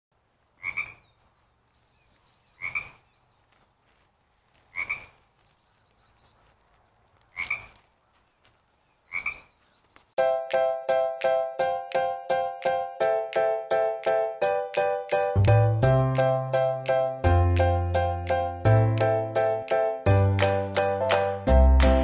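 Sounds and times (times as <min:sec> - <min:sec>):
frog ribbit calls: 0:00.6 - 0:01.2, 0:02.6 - 0:03.2, 0:04.7 - 0:05.2, 0:07.3 - 0:07.8, 0:09.1 - 0:09.6.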